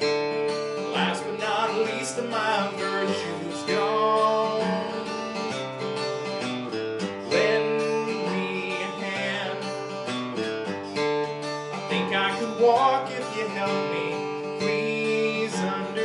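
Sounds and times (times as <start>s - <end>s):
man singing: 0.0s - 10.7s, 11.7s - 16.0s
acoustic guitar strumming: 0.0s - 16.0s.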